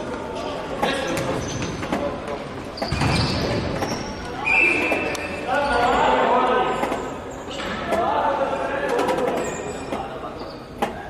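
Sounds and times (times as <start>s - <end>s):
voices calling out in a hall: 0.0s - 11.0s.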